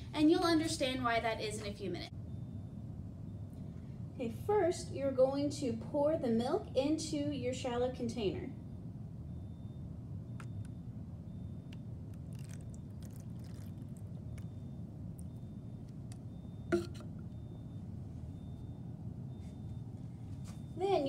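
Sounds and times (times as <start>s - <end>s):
low room hum: 0.0s - 21.0s
milk pouring into plastic dish: 12.1s - 15.3s
bottle knock on surface: 16.7s - 17.1s.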